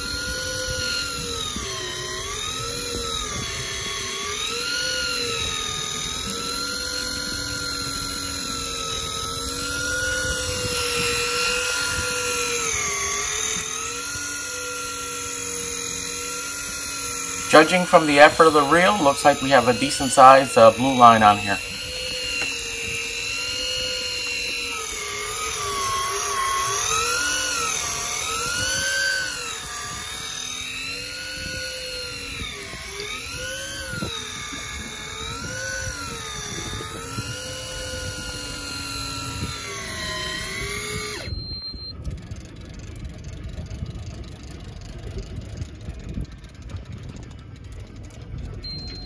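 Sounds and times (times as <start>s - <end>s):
electric fishing reel motor whine: 0.0s - 49.0s
wind: 0.0s - 49.0s.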